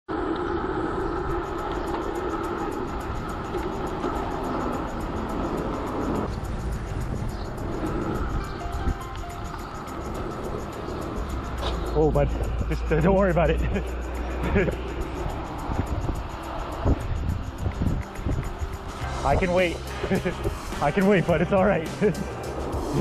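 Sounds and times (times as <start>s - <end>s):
street traffic: 0.1s - 23.0s
music playing: 2.0s - 23.0s.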